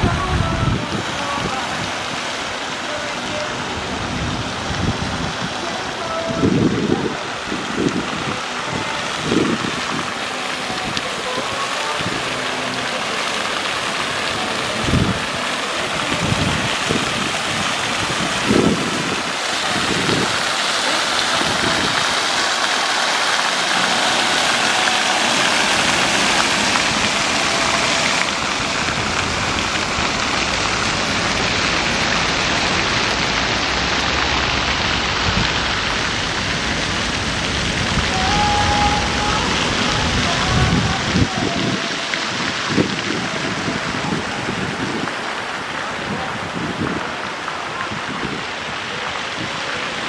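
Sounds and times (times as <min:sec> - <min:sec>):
fountain water splashing: 0:00.0 - 0:50.0.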